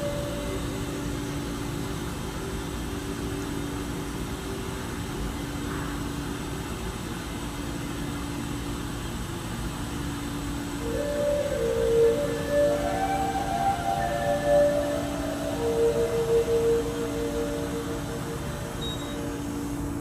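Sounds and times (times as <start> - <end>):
elevator humming and hissing: 0.0 - 20.0.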